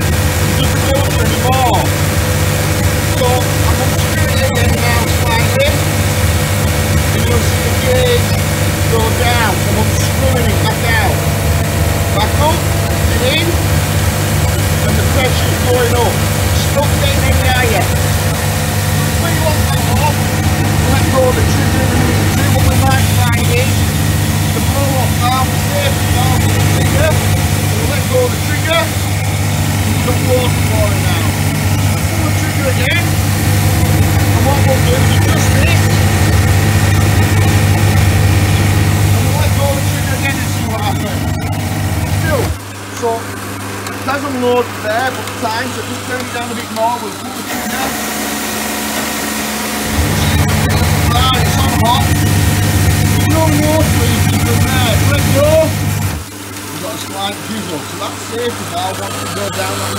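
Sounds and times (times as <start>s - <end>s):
pressure washer running: 0.0s - 59.9s.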